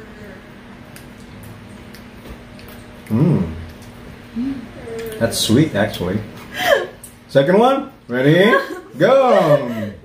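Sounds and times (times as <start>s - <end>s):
steady low hum: 0.0s - 10.0s
mouth clicks and smacks chewing: 0.9s - 4.0s.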